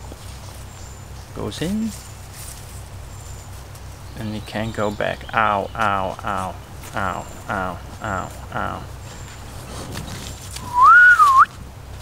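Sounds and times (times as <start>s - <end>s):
short whistled note: 10.6s - 11.5s.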